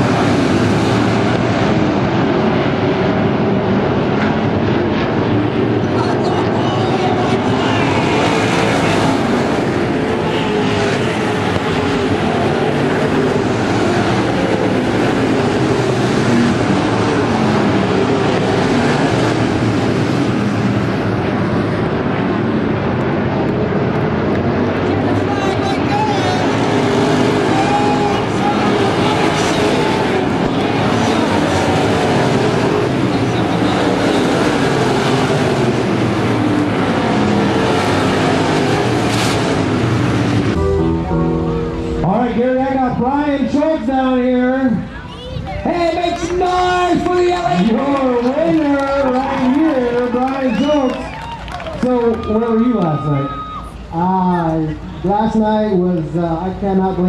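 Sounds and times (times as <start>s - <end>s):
race car engines running hard: 0.0s - 40.8s, 41.8s - 57.0s.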